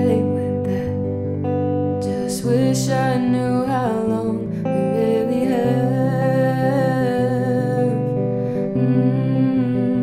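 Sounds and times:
guitar chords: 0.0 - 10.0
woman singing wordless line: 0.0 - 10.0.

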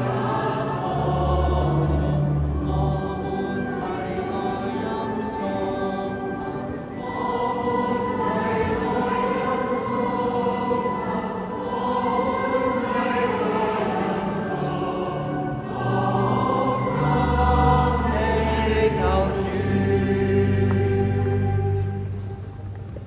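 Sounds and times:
choir singing church music: 0.0 - 23.0.

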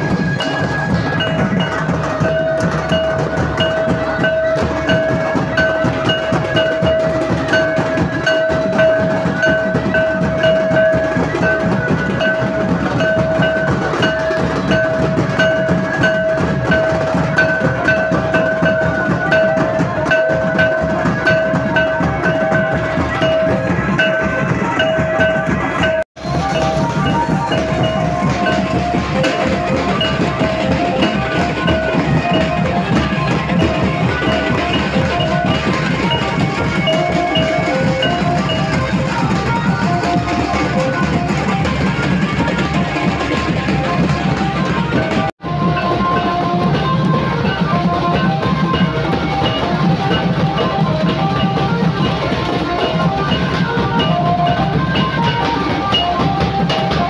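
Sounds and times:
fast drum and percussion music: 0.0 - 57.0.

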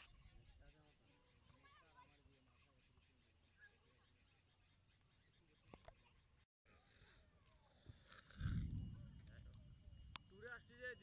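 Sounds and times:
wind buffeting microphone: 8.2 - 10.2.

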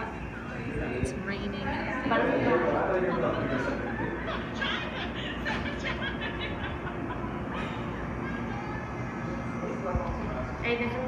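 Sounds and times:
distant voices talking: 0.0 - 11.0.

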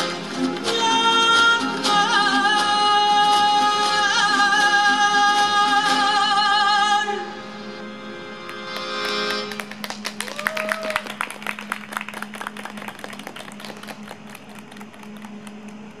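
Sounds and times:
tango music: 0.0 - 9.8
steady low hum: 7.5 - 16.0
audience clapping: 8.4 - 16.0.

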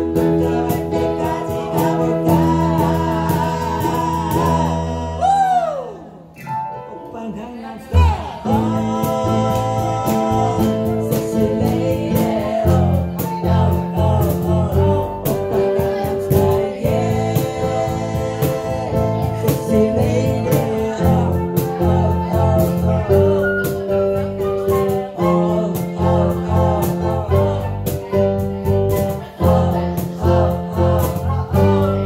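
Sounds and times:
woman singing: 0.0 - 5.9, 7.2 - 32.0
electric bass line: 0.0 - 6.1, 8.0 - 32.0
flute: 3.7 - 6.7, 12.3 - 16.3, 20.5 - 25.8.

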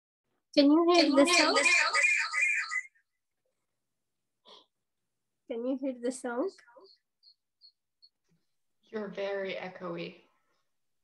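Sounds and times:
person speaking: 0.6 - 2.2.

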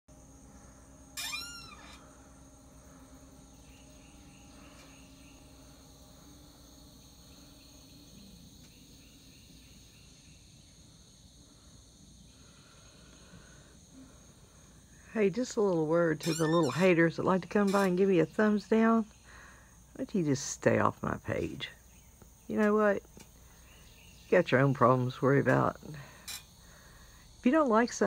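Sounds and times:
insect chorus: 0.1 - 28.0.

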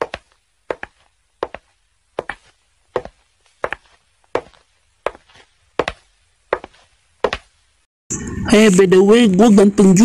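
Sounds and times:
footsteps walking: 0.0 - 7.8.

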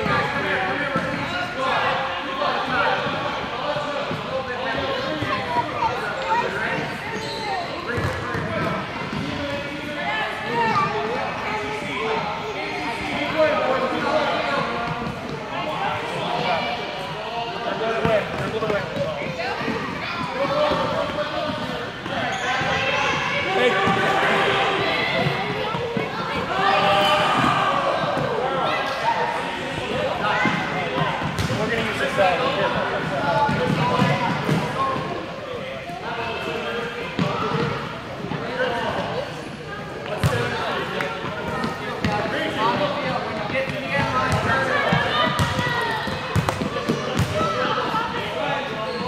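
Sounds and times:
children chattering and calling: 0.0 - 49.0.

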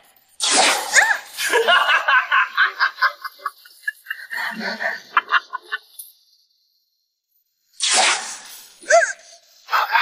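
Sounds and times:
man laughing maniacally: 1.0 - 5.9.

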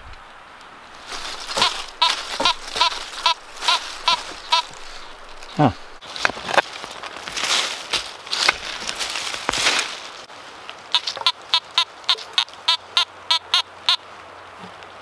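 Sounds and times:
hand digger scraping soil: 0.9 - 10.0
metal detector beeping: 1.2 - 5.2, 11.0 - 14.0.

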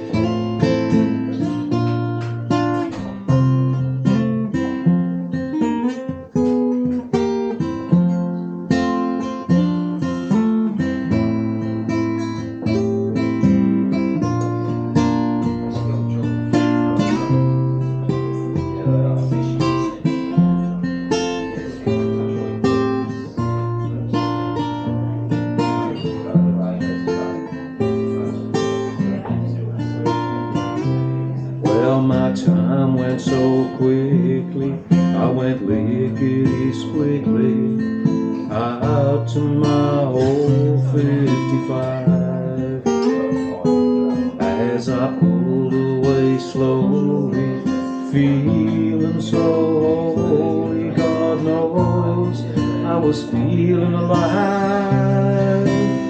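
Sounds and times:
acoustic guitars strumming: 0.0 - 56.0.

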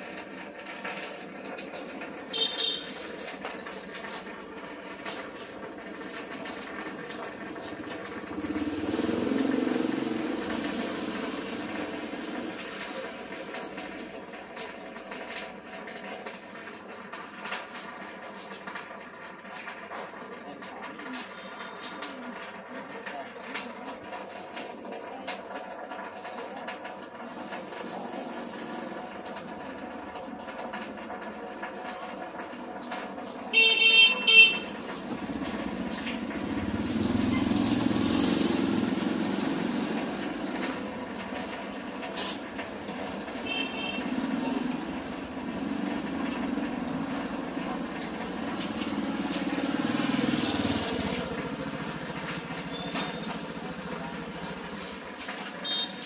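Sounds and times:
motorbike engine passing: 4.1 - 13.1, 34.4 - 56.0.

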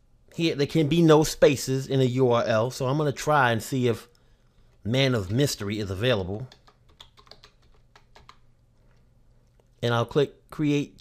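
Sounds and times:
computer keyboard typing: 6.3 - 8.6.

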